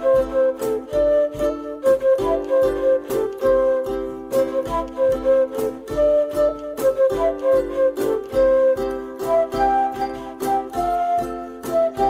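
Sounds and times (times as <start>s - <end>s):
flute melody: 0.0s - 12.0s
strummed ukulele chords: 0.0s - 12.0s.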